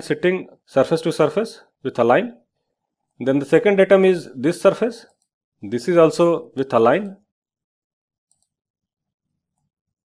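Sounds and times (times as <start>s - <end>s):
computer mouse click: 8.3s - 8.6s.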